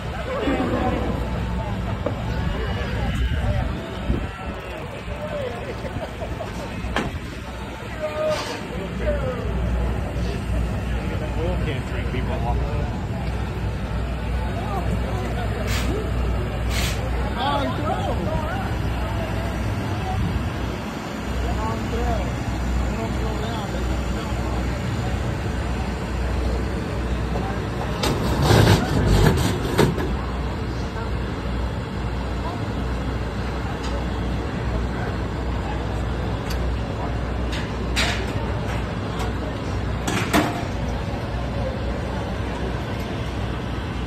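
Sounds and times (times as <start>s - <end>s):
indistinct voices: 0.0s - 44.0s.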